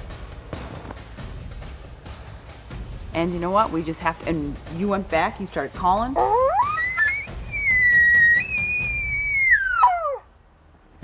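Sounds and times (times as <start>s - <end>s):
elk bugling: 6.1s - 10.3s.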